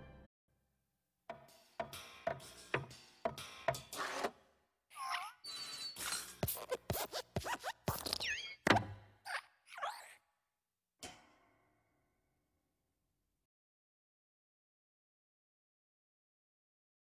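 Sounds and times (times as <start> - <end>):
gliding cartoon squeaks: 4.9 - 8.7, 9.3 - 10.2
springy cartoon thumps and boings: 7.9 - 10.1.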